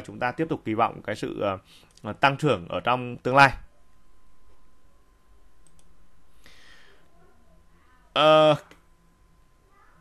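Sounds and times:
low room hum: 0.0 - 10.0
computer mouse clicks: 5.6 - 5.9.

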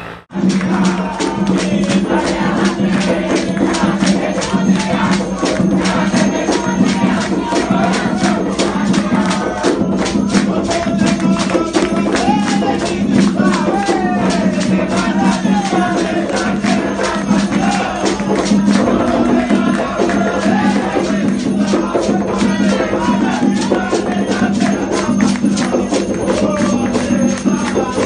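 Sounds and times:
voices singing: 0.0 - 28.0
fast drum rhythm: 0.3 - 28.0.

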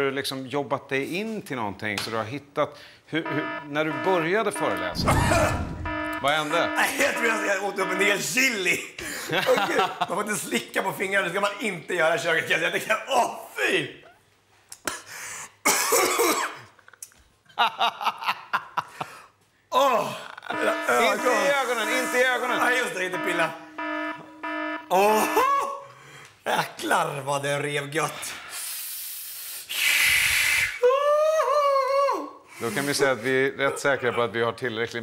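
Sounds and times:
man laughing: 6.5 - 10.3, 17.6 - 19.2, 19.8 - 23.3, 25.0 - 25.8
man coughing and spluttering: 15.6 - 16.8
man exclaiming: 19.7 - 23.5, 24.9 - 25.8
man hissing air through teeth: 28.4 - 30.8.

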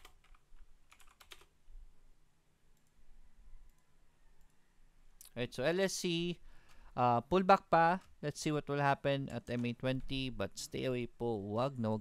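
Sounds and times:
computer keyboard keystrokes: 0.0 - 1.5.

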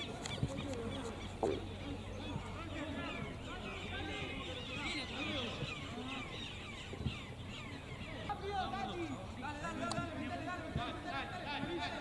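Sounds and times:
birds chirping: 0.0 - 12.0
distant players calling: 0.0 - 12.0
steady low background noise: 0.0 - 12.0.

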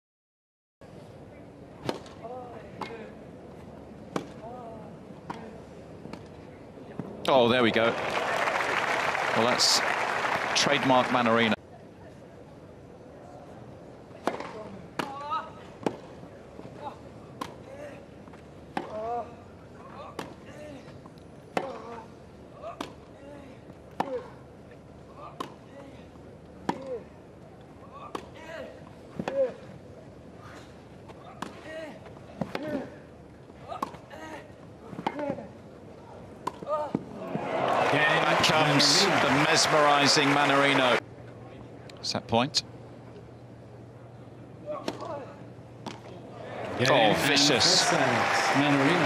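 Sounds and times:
crowd applause: 7.6 - 11.6, 37.2 - 41.0, 46.6 - 49.0.

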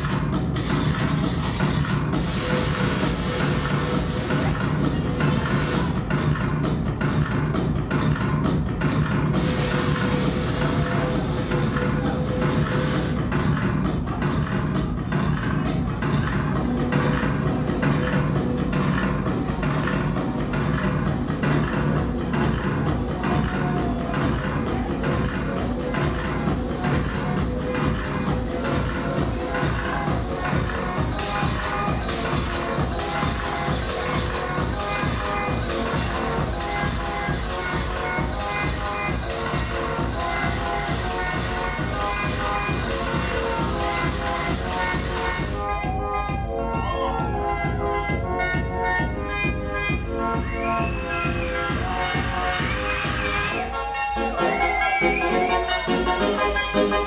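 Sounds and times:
electronic dance music: 0.0 - 57.0.

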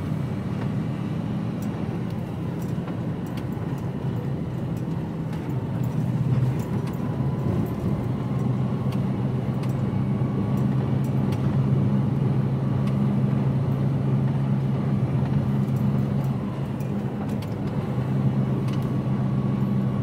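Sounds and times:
truck diesel engine cruising: 0.0 - 20.0
tyre and road noise: 0.0 - 20.0.

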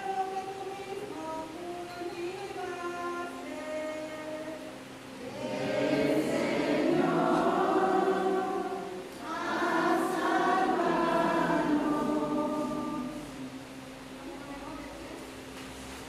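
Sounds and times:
voices singing a hymn: 0.0 - 14.6.

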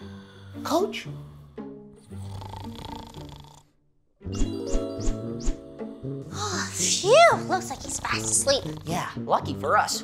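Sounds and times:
man snoring: 1.9 - 3.8, 7.6 - 9.1.

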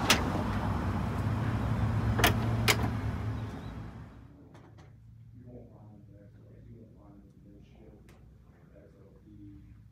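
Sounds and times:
traffic hum: 0.0 - 9.9.

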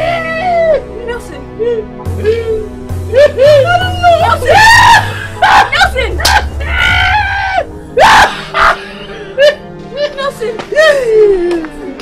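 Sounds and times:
background music with bass line: 0.0 - 10.0
high-pitched screams of fright: 4.5 - 8.8.

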